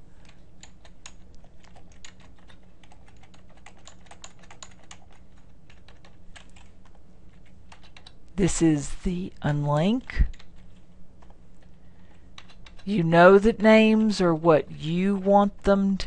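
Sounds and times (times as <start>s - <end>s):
faint low hum: 0.0s - 16.0s
typing on keyboard: 0.2s - 8.2s, 10.2s - 13.0s.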